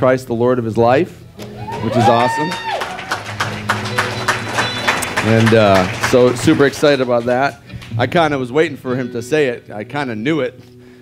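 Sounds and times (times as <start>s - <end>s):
hand clapping: 1.4s - 8.6s.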